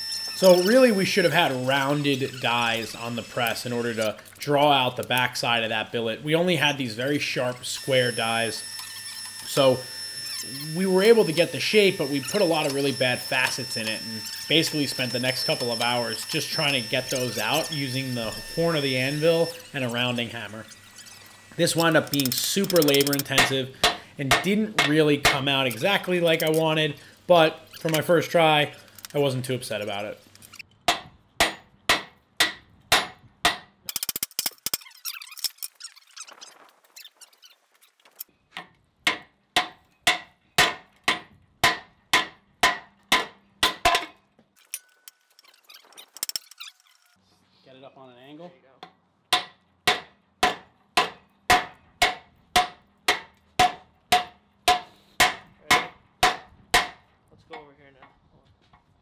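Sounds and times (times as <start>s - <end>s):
hammer striking metal on anvil: 23.4s - 25.5s, 30.9s - 33.7s, 39.1s - 44.2s, 49.3s - 57.0s.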